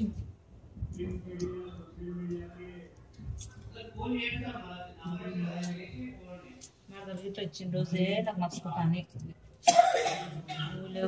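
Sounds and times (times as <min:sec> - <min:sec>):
person coughing: 0:09.6 - 0:10.8.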